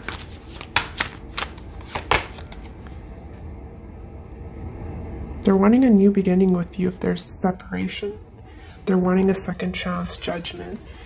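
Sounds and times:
sharp card snaps: 0.0 - 2.5
cards being shuffled: 0.0 - 3.0
faint low room hum: 0.0 - 11.0.

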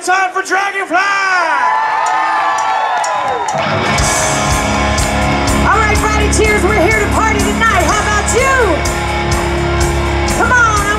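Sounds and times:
crowd whooping and cheering: 1.4 - 10.9
live rock band: 3.4 - 10.9.

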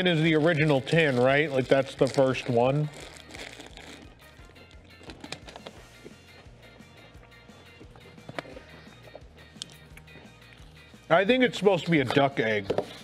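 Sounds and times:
clicks and rustles of wrapped chocolates: 0.0 - 6.2, 11.5 - 13.0
quiet background music: 0.0 - 13.0.

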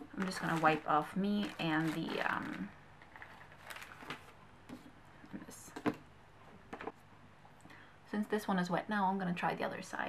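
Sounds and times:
rustling of objects: 0.0 - 7.1.

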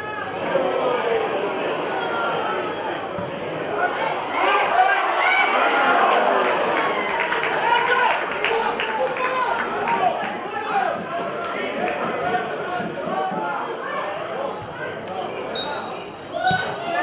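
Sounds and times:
players shouting: 0.0 - 17.0
referee's whistle blasts: 15.5 - 16.8.

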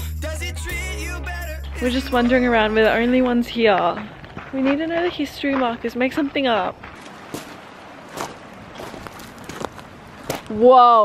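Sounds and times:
footsteps on gravel: 1.7 - 10.7.

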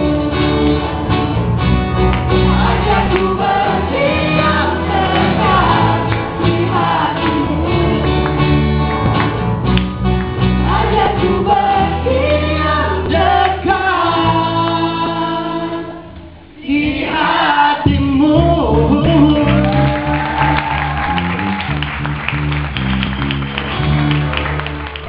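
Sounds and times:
instrumental backing music: 0.0 - 25.0
group singing worship song: 2.2 - 8.5, 10.6 - 20.5.

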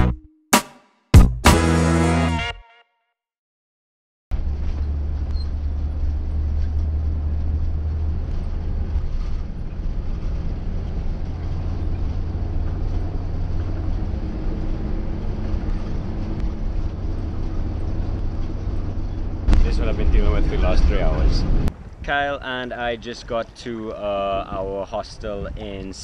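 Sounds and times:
bus engine and road rumble: 4.3 - 26.0.

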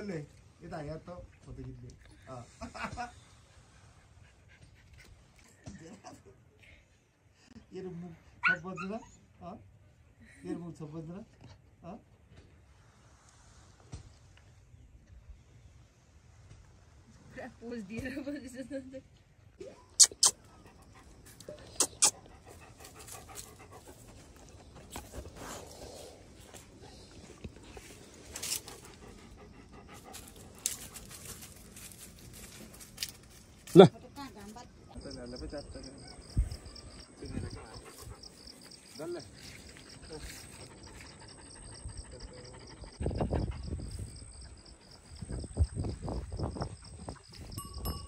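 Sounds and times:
dog panting: 20.2 - 32.3, 35.9 - 44.9
dog breathing softly: 20.6 - 31.0.

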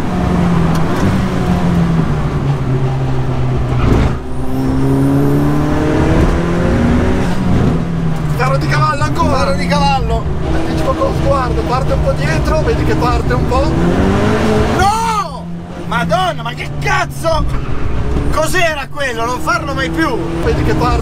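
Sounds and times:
car engine accelerating hard: 0.0 - 21.0.

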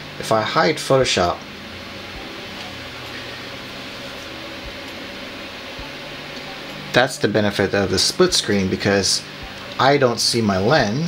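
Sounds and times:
fan hiss: 0.0 - 11.0.

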